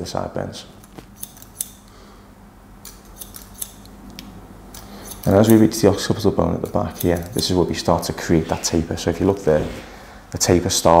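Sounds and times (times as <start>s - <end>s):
scissors snipping hair: 0.8s - 1.9s, 2.8s - 6.0s, 6.6s - 8.2s.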